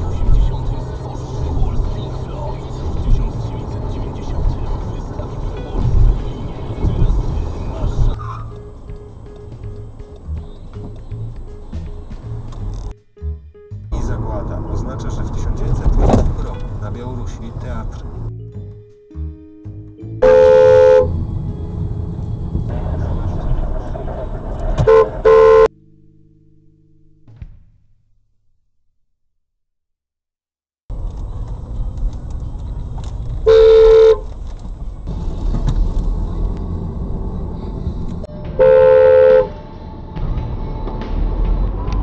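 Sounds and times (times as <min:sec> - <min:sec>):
car engine and road noise: 0:00.0 - 0:28.9, 0:30.9 - 0:42.0
car horn blasts: 0:20.2 - 0:21.2, 0:24.8 - 0:25.8, 0:33.4 - 0:34.3, 0:38.3 - 0:39.8.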